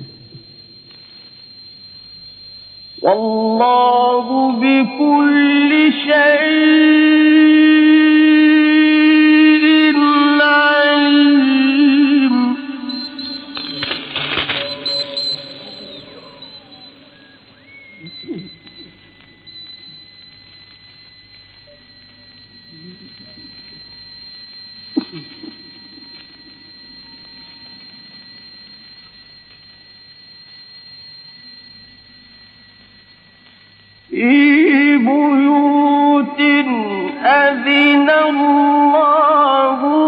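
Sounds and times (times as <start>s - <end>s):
thin high tone: 0.0s - 40.0s.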